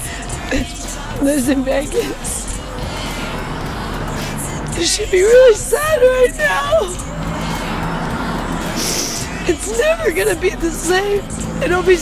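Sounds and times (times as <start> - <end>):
vehicle passing on street: 1.0 - 12.0.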